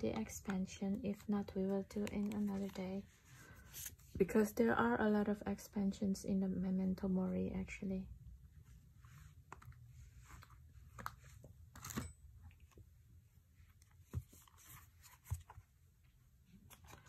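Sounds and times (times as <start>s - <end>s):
cards sliding and tapping: 2.0s - 2.8s.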